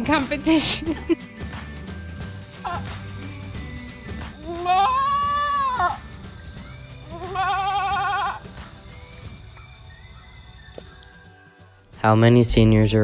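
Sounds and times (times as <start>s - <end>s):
goat bleating: 2.6s - 3.0s, 4.4s - 6.1s, 7.0s - 8.6s.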